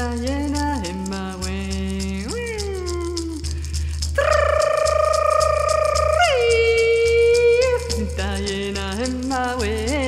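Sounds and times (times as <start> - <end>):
hand rattle shaking: 0.0 - 10.0
woman chanting with vibrato: 4.2 - 8.2.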